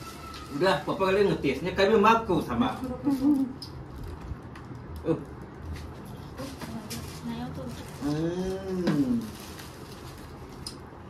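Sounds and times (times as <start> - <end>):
people eating by hand: 0.0 - 11.0
person humming: 8.0 - 9.3.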